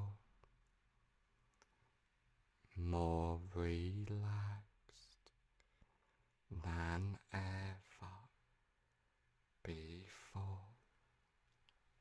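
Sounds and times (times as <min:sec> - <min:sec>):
soft spoken word: 0:00.0 - 0:00.3, 0:02.7 - 0:05.4, 0:06.5 - 0:08.4, 0:09.6 - 0:10.8.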